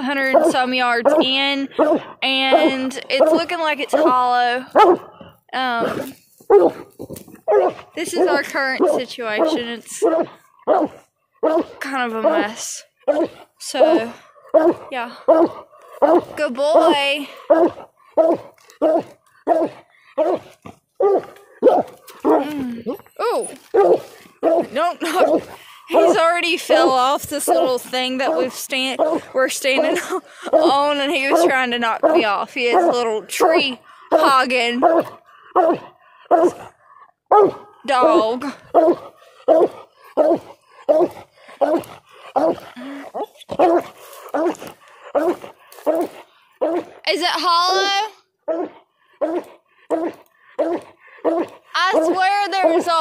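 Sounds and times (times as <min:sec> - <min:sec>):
hound barking: 0:00.0 - 0:23.0, 0:23.7 - 0:53.0
dog barking: 0:04.8 - 0:05.1, 0:06.5 - 0:06.8, 0:07.5 - 0:12.5, 0:17.5 - 0:20.4, 0:21.0 - 0:22.5, 0:23.7 - 0:26.2, 0:37.3 - 0:37.6.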